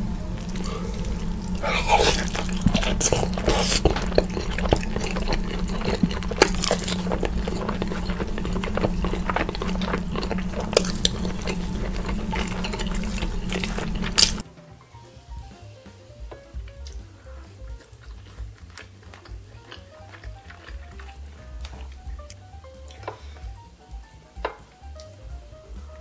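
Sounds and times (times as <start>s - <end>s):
steady low hum: 0.0s - 14.4s
wet chewing and lip-smacking: 0.0s - 14.4s, 16.7s - 23.1s.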